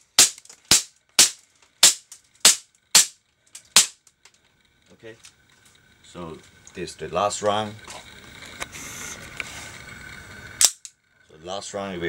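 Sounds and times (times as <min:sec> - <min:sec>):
airsoft pistol shots: 0:00.1 - 0:04.0.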